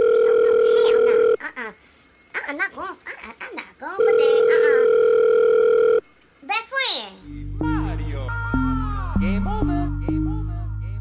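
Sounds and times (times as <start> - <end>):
steady telephone tone: 0.0 - 1.4, 4.0 - 6.0
woman's voice: 0.0 - 5.1.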